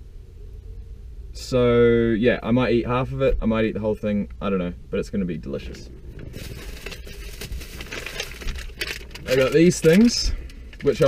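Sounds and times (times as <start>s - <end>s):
plastic bag rustling: 5.9s - 11.0s.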